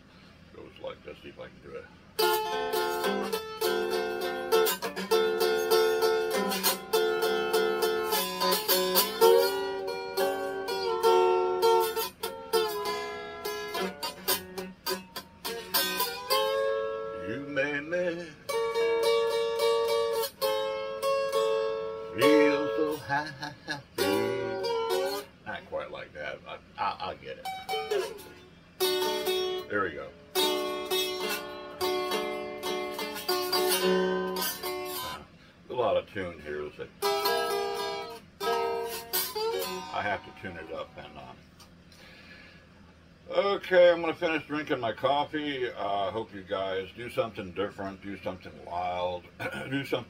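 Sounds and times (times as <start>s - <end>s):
out of tune acoustic guitar strumming: 2.2s - 50.0s
man singing: 17.2s - 18.4s, 22.1s - 24.7s.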